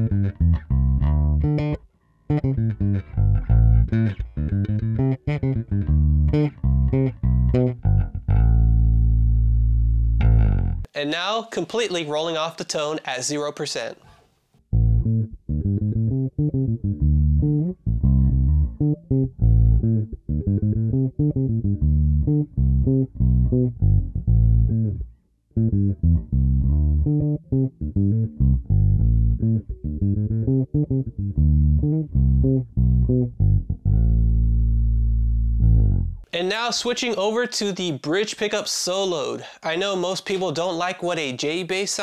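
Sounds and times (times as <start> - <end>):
electric bass plucked notes: 0.0 - 10.9, 14.7 - 36.3.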